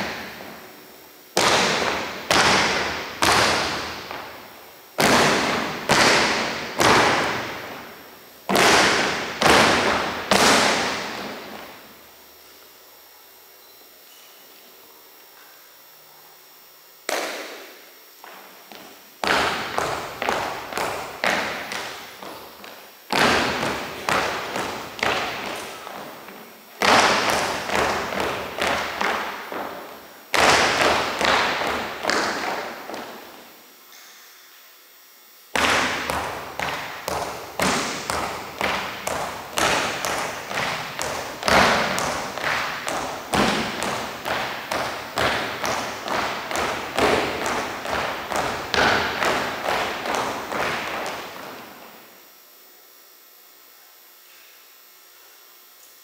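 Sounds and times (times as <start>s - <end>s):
marching steps on wooden floor: 0.0s - 0.7s, 1.4s - 11.8s, 18.2s - 33.4s, 35.6s - 51.8s.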